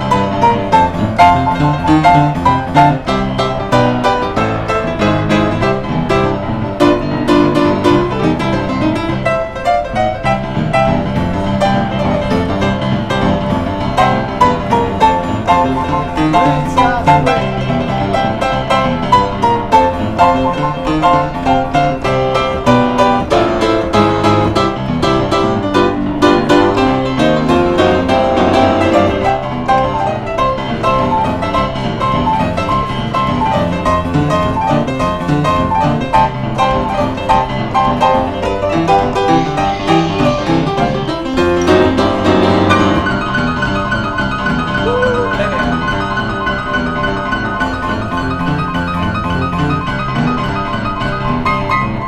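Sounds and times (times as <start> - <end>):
lively solo piano piece: 0.0 - 52.0.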